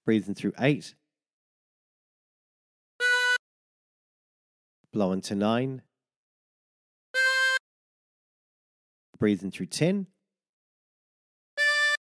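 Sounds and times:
harmonica note: 0:03.0 - 0:03.4, 0:07.2 - 0:07.6, 0:11.6 - 0:12.0.

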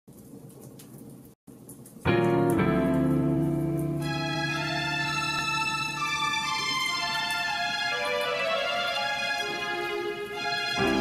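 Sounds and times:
wood fire crackling: 0:00.1 - 0:11.0.

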